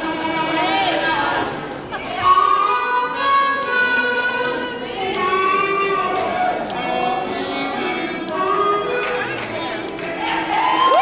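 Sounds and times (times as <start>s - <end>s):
amplified blues harmonica: 2.0s - 10.0s.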